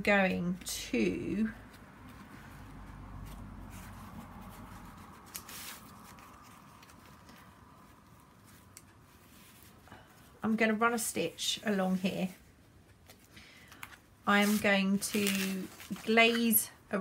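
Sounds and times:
hands rustling fabric: 0:00.5 - 0:17.0.

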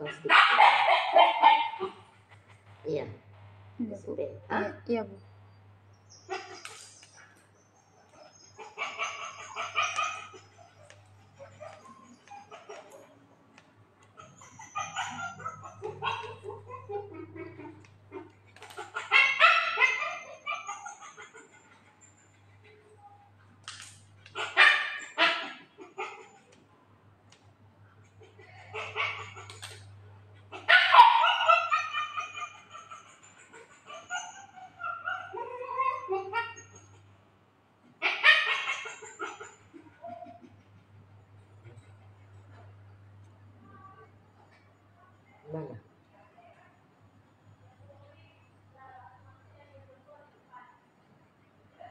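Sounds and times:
dog barking: 0:00.0 - 0:02.1, 0:08.0 - 0:13.1, 0:14.2 - 0:21.2, 0:24.3 - 0:26.2, 0:28.7 - 0:29.5, 0:30.5 - 0:33.0
faint low hum: 0:00.0 - 0:38.0, 0:38.8 - 0:51.9.

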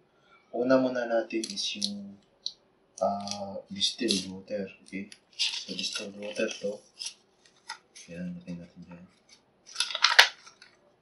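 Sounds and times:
paper card rustling: 0:04.0 - 0:04.3, 0:05.2 - 0:08.2, 0:09.2 - 0:10.8.

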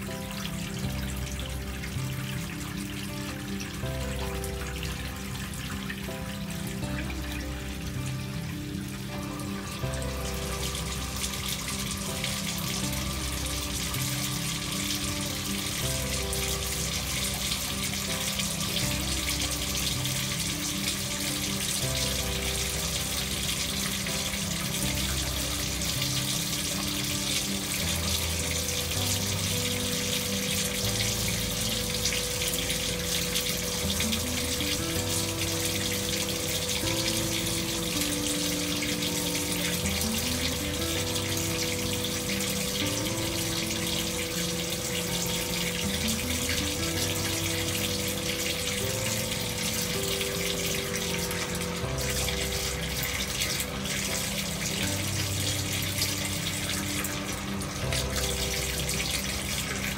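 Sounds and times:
gentle background music: 0:00.0 - 0:59.9
tap water running into tub: 0:00.0 - 0:59.9.

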